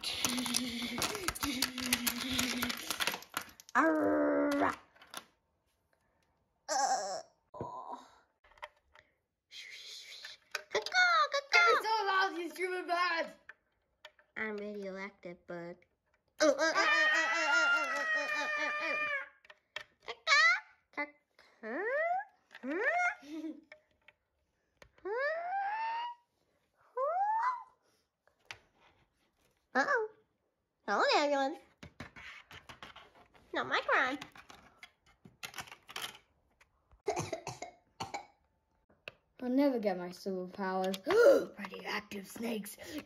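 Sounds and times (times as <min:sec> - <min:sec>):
plastic toy pieces clicking: 0:00.0 - 0:05.3, 0:34.1 - 0:36.7, 0:40.6 - 0:43.0
person wailing: 0:16.4 - 0:19.3.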